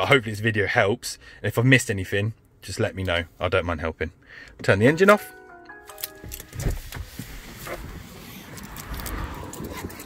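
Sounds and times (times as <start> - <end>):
rustling and handling noise: 5.8 - 10.0.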